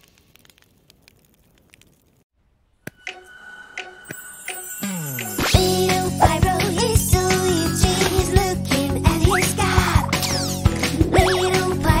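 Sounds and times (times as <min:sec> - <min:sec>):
campfire crackling: 0:00.0 - 0:02.8.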